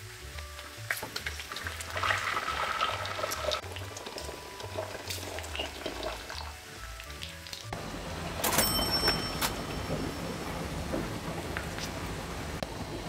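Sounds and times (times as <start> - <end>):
water pouring into steel pot: 1.4 - 7.2.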